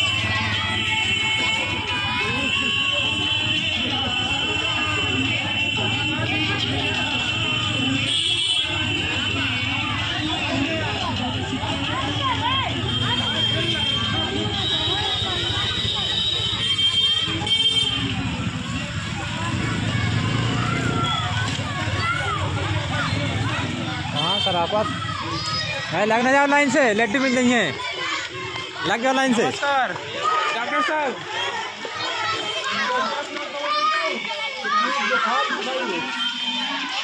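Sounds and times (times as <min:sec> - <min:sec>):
motorcycle engine running: 0:00.0 - 0:26.0
children chattering and shouting: 0:00.0 - 0:37.0.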